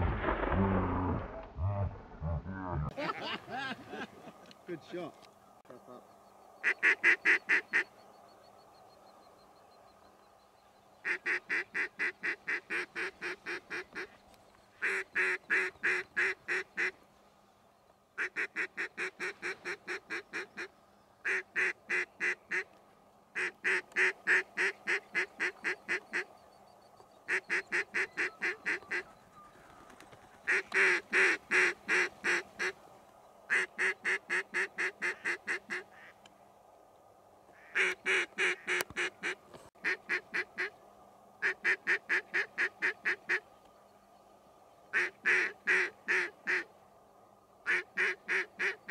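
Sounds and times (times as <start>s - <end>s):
duck call quacks: 33.5s - 36.1s, 37.6s - 40.7s, 47.7s - 48.9s.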